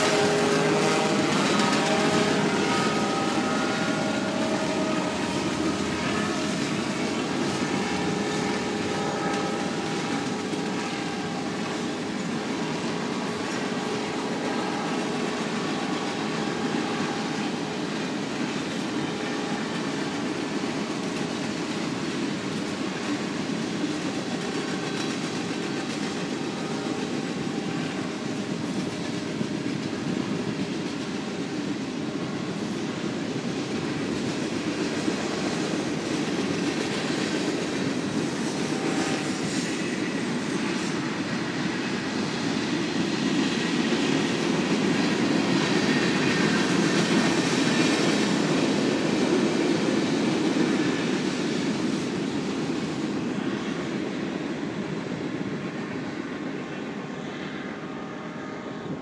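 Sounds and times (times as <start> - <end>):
engine and propeller droning overhead: 0.0 - 59.0.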